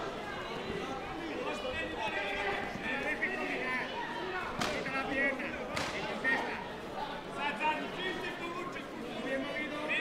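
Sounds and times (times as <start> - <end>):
voices echoing in hall: 0.0 - 10.0
sharp smacks: 4.6 - 4.8, 5.7 - 6.0.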